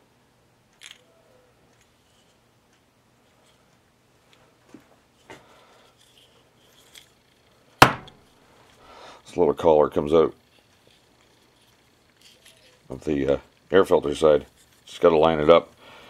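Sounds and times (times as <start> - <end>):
faint steady hum: 0.0 - 16.0
small metal parts clicking: 0.7 - 1.1, 5.9 - 8.8, 10.1 - 15.8
sharp knock on workbench: 7.8 - 8.2.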